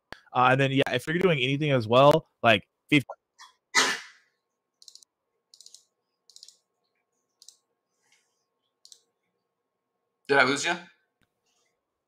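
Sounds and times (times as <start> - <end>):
faint computer clicks: 7.4 - 7.7, 8.8 - 9.1.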